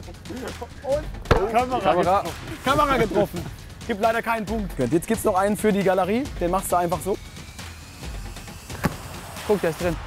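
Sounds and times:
football kick thud: 8.7 - 9.1.

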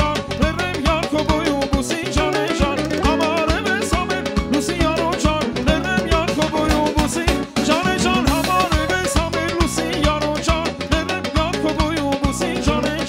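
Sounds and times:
drum beat: 0.0 - 13.0.

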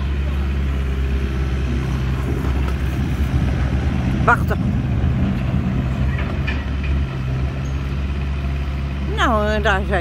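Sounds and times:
diesel engine droning: 0.0 - 10.0.

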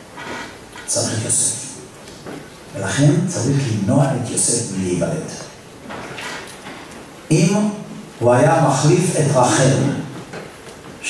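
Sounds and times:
man lecturing: 0.9 - 1.8, 2.7 - 5.6, 7.3 - 10.2.

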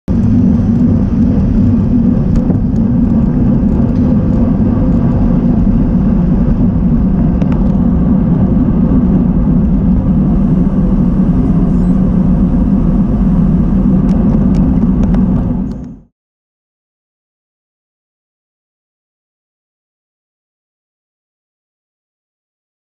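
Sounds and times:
wind buffeting microphone: 0.1 - 16.1.

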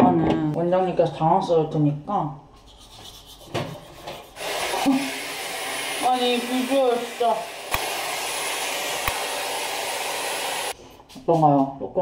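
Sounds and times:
hot-air brush blowing with whine: 4.4 - 10.8.

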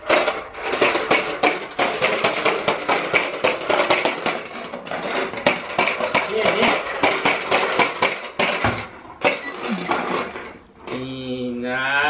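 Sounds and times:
push toy balls popping and clattering: 0.0 - 11.0.

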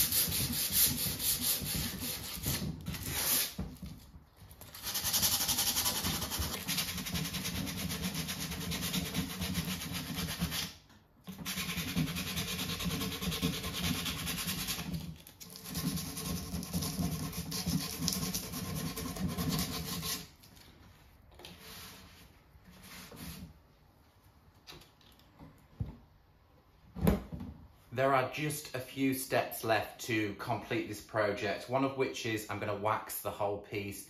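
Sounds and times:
hand sanding wood: 0.0 - 3.6, 4.8 - 10.8, 11.4 - 20.4.

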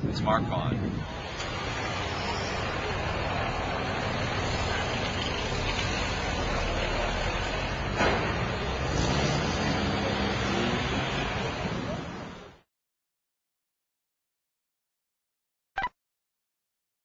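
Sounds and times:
cars driving past: 0.8 - 12.7.

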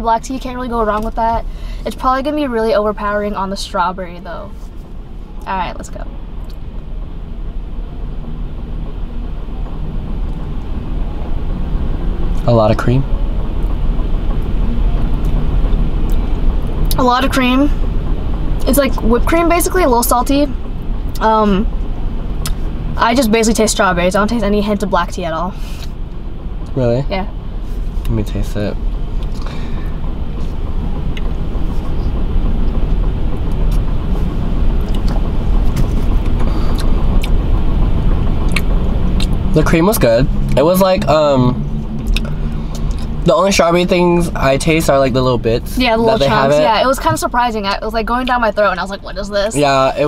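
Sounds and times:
low rumble and hiss in car: 0.0 - 50.0.

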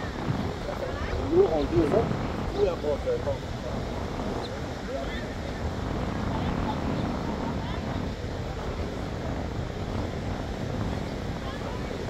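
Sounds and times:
faint voices: 0.0 - 12.0
surf: 0.0 - 12.0
wind on microphone: 0.0 - 12.0.

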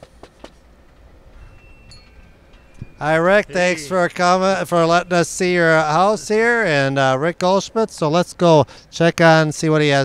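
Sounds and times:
wind chime tinkling: 1.3 - 6.9.

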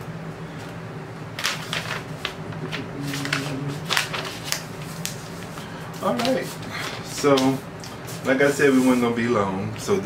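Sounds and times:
paper sleeve rustling: 1.4 - 9.2.

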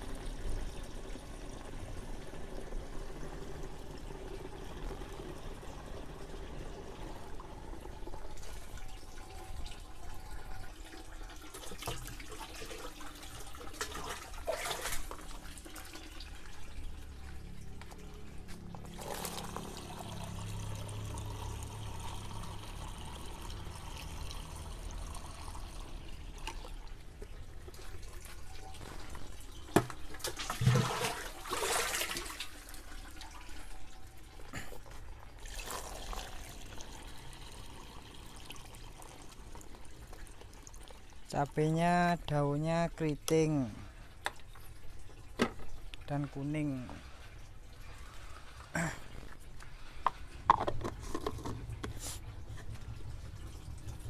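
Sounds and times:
water pouring and sloshing: 0.0 - 54.0.

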